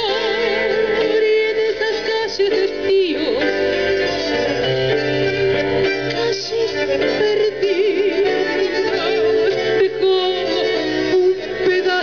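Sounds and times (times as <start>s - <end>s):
woman singing with vibrato: 0.0s - 4.2s, 6.2s - 12.0s
bandoneons: 0.0s - 12.0s.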